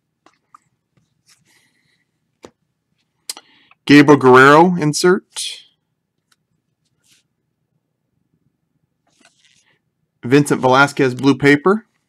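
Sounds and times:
cards sliding rustle: 9.1 - 9.8.

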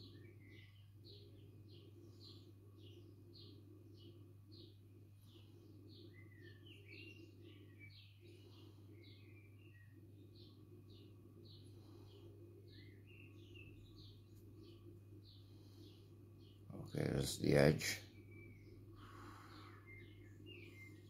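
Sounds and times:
bird chirping: 0.0 - 21.0
low steady hum: 0.0 - 21.0.

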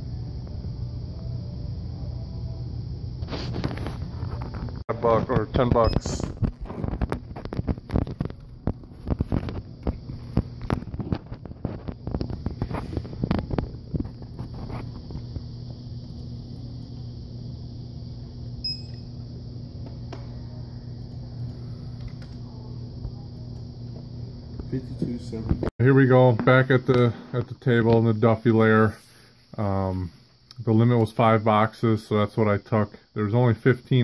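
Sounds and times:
low electrical hum: 0.0 - 34.0
high beep: 18.6 - 19.1.

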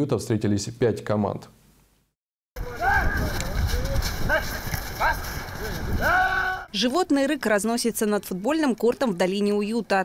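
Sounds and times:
players yelling together: 2.6 - 3.3, 6.0 - 6.7.

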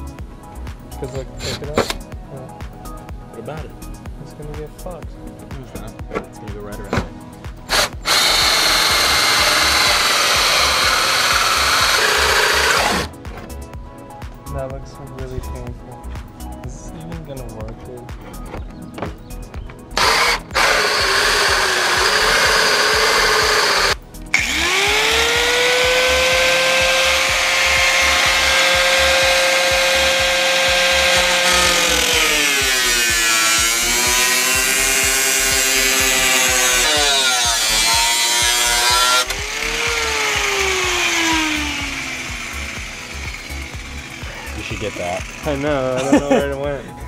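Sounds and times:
drill with hole saw cutting metal: 7.7 - 13.1, 20.0 - 45.7
grinder winding down whine: 7.7 - 13.1, 20.0 - 45.6
angle grinder grinding: 7.7 - 13.2, 20.0 - 45.9.

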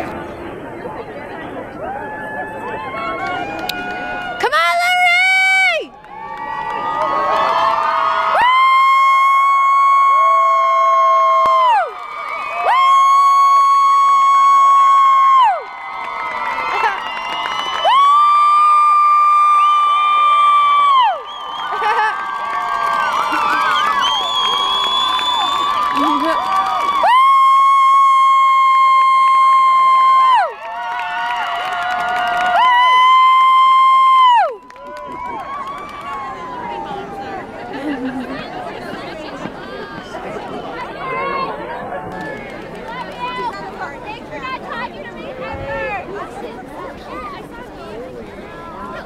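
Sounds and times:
stadium crowd cheering: 1.1 - 49.0.

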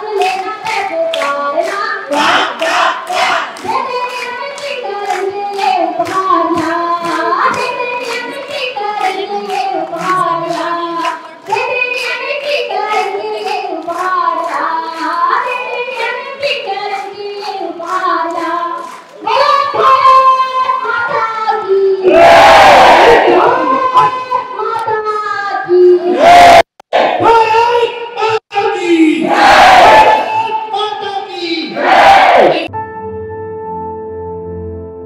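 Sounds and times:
woman singing through microphone: 0.0 - 2.6, 3.4 - 22.1, 23.1 - 26.1
crowd clapping in time: 0.0 - 21.2
crowd cheering and applause: 1.1 - 20.6, 22.0 - 24.5.

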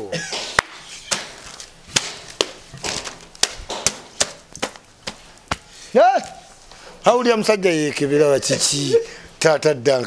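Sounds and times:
sharp slaps or knocks: 0.3 - 6.4.

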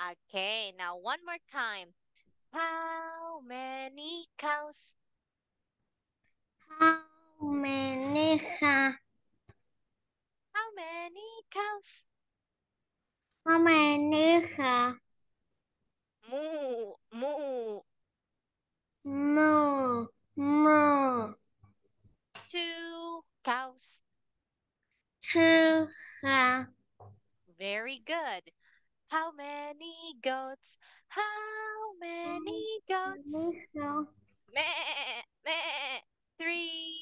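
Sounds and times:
person imitating goat bleat: 34.6 - 36.0.

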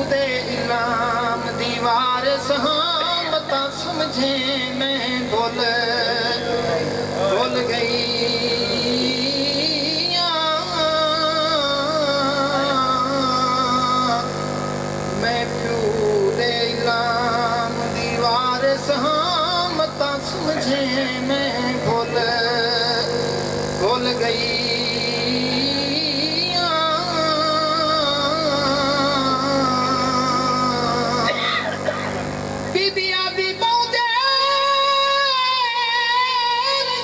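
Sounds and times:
man chanting over microphone: 0.0 - 31.8, 32.7 - 37.0
steady low hum: 0.0 - 37.0.

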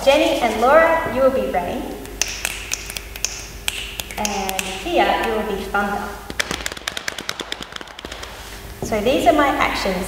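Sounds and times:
rapid sharp body percussion taps: 2.0 - 5.5, 6.3 - 8.6.

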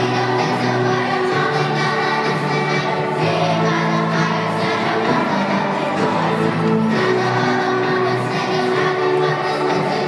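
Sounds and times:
children's choir singing: 0.0 - 10.0
musical accompaniment: 0.0 - 10.0.

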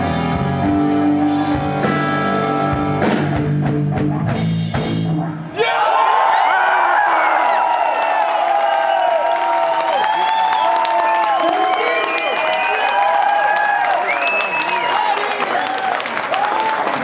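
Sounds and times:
audience cheering and whooping: 5.6 - 17.0
steady clapping: 8.1 - 17.0.

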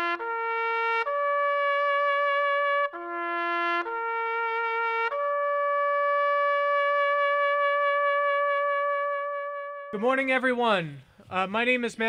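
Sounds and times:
trumpet holding a long note: 0.0 - 10.0.

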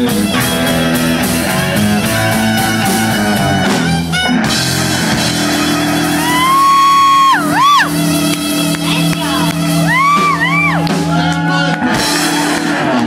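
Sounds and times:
rock band sustained chord: 0.0 - 13.0.

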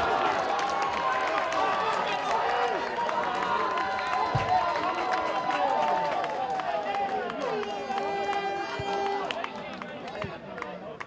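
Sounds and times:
voices shouting and cheering: 0.0 - 10.9.

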